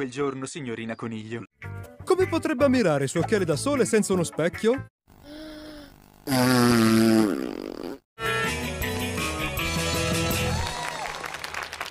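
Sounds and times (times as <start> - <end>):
music: 1.5 - 4.9, 8.2 - 11.9
cartoon horn blast: 8.2 - 8.7.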